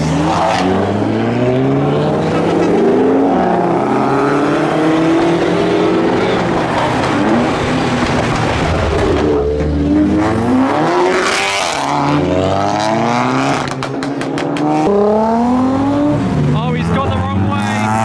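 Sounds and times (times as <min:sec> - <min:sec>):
car engines revving: 0:00.0 - 0:18.0.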